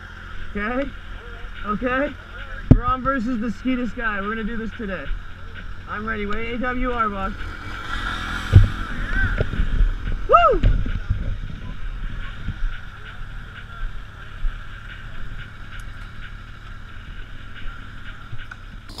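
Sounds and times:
motorcycle engines at low revs: 0:00.0 - 0:19.0.

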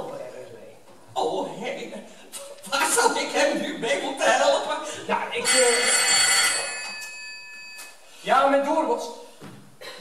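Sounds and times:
telephone bell ringing: 0:05.4 - 0:08.0.

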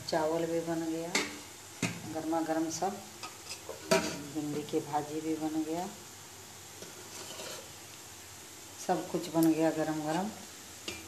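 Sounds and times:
woman speaking: 0:00.0 - 0:01.2, 0:02.0 - 0:03.0, 0:04.1 - 0:06.0, 0:08.8 - 0:10.4
low room hiss: 0:00.0 - 0:11.0.

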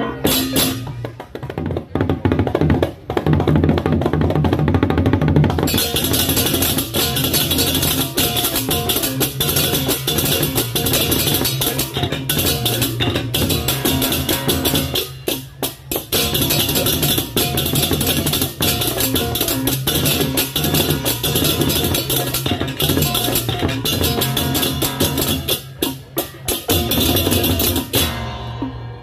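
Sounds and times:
drums: 0:00.0 - 0:29.0
hand cymbals crashing: 0:05.7 - 0:28.7.

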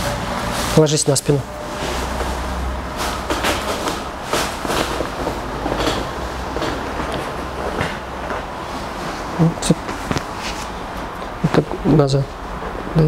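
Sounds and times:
rustling on a padded table: 0:01.6 - 0:10.9.

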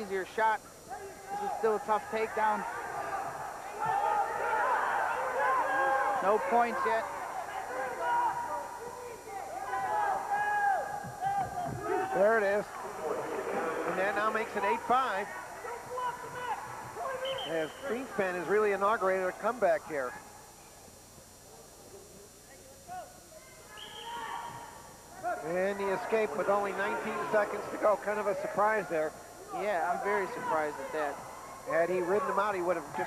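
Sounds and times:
faint gymnasium room sound: 0:00.0 - 0:33.0
distant shouted voices: 0:00.8 - 0:20.6, 0:22.8 - 0:33.0.

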